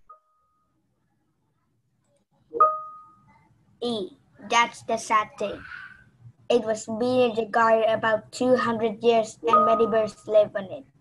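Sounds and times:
faint steady tone: 0:00.0 - 0:03.8.

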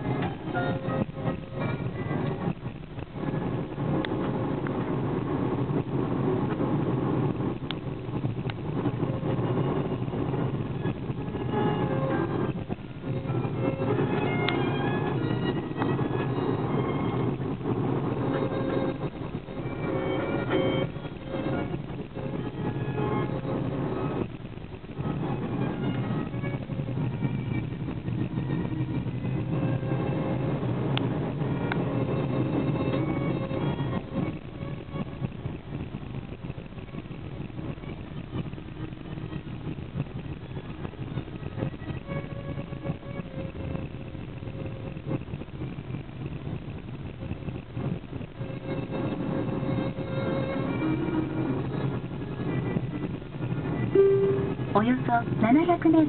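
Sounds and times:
car engine and road noise: 0:00.0 - 0:56.0
faint music playing: 0:07.3 - 0:56.0.

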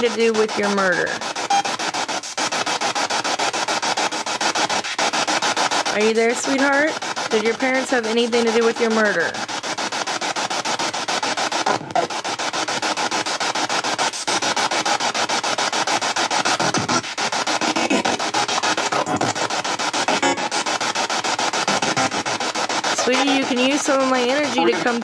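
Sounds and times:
pulsing radio static: 0:00.0 - 0:25.0
snatches of broadcast sound: 0:00.0 - 0:25.0.

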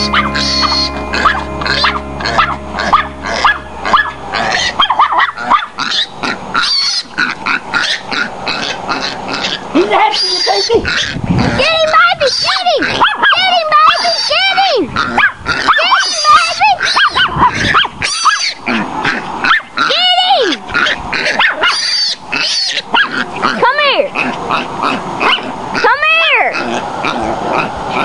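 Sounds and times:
dog yelping barks: 0:12.5 - 0:14.3, 0:15.2 - 0:18.4, 0:19.5 - 0:19.8, 0:21.3 - 0:22.0, 0:22.9 - 0:23.2, 0:25.2 - 0:26.4.

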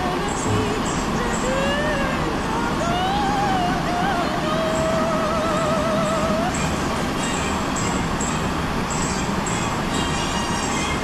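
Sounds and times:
city road traffic: 0:00.0 - 0:11.0.

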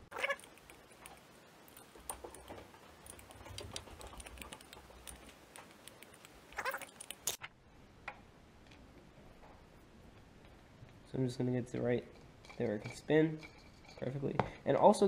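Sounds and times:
screwdriver clicks and scrapes: 0:00.4 - 0:07.5.

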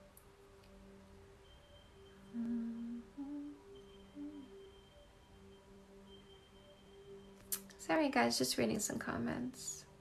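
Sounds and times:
faint steady background hum: 0:00.0 - 0:10.0
woman humming softly: 0:02.3 - 0:04.6.

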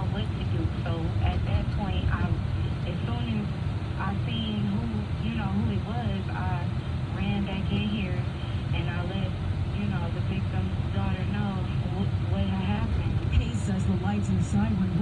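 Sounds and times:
car road and engine rumble: 0:00.0 - 0:15.0
person talking: 0:00.0 - 0:15.0.

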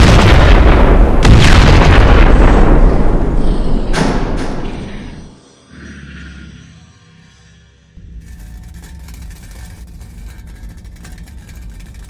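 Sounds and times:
low engine-like rumble: 0:07.6 - 0:12.0
dense crackle: 0:08.0 - 0:12.0.

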